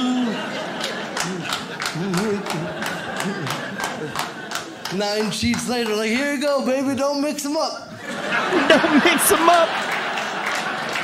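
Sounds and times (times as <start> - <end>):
sharp claps or slaps: 1.1 - 6.2
man laughing hard: 1.2 - 4.2.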